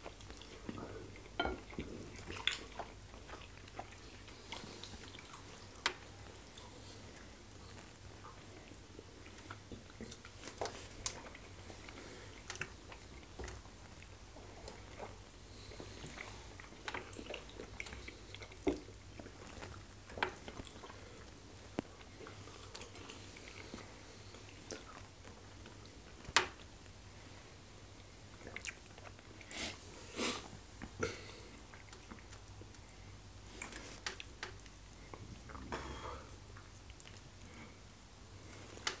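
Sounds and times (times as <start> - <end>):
chewing food: 0.0 - 27.0, 27.9 - 29.5, 30.5 - 37.8
low steady hum: 0.0 - 39.0.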